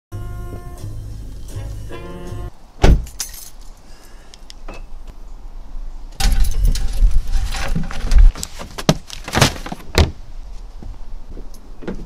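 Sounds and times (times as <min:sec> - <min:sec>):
car radio music: 0:00.2 - 0:02.5
car door shutting: 0:02.8 - 0:03.2
keys jingling: 0:03.1 - 0:03.7
metal mailbox opening: 0:06.2 - 0:08.2.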